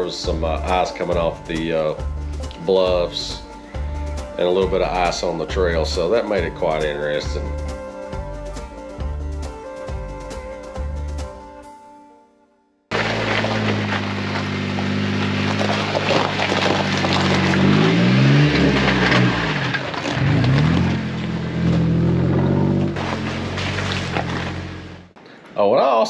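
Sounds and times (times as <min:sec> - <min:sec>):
engine crawling at low speed: 0:12.9 - 0:25.2
tyres crunching on gravel and ice: 0:12.9 - 0:25.2.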